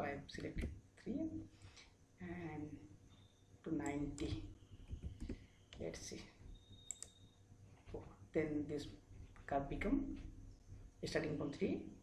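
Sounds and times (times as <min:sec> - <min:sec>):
computer mouse clicking: 0:03.8 - 0:05.9, 0:06.8 - 0:07.2.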